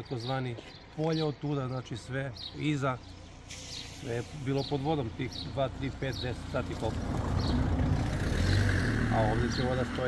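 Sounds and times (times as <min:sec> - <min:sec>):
motor vehicle passing by: 0:05.3 - 0:10.0.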